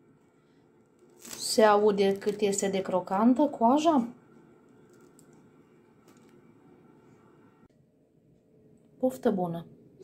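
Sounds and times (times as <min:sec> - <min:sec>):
bread crust crackling: 0:00.8 - 0:03.1, 0:04.2 - 0:07.3.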